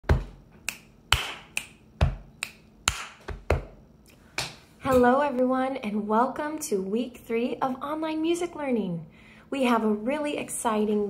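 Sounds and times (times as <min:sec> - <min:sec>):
finger snaps: 0:00.6 - 0:03.4
hand pats on chest: 0:00.7 - 0:03.8.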